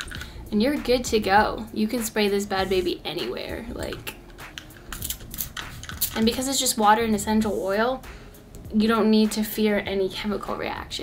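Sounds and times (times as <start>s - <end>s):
spray bottle spritzing: 4.6s - 6.2s.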